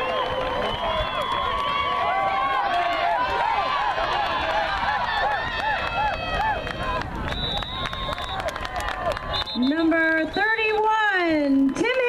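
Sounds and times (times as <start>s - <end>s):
spectators shouting and cheering: 0.0s - 12.0s
referee's whistle: 7.3s - 8.5s, 9.2s - 10.6s.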